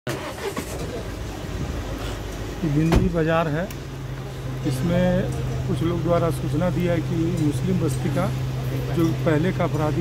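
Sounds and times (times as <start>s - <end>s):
faint voices: 0.2s - 10.0s.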